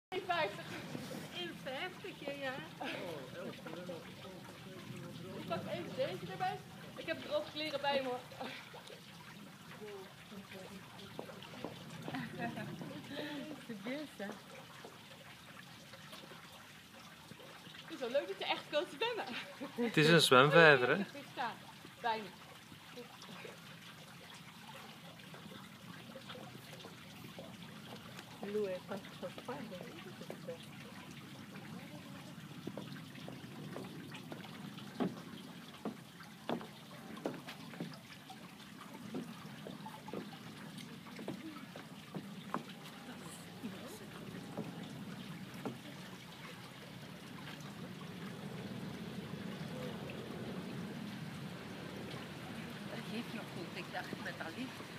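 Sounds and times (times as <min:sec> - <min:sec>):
gentle water splashing: 0:00.1 - 0:54.9.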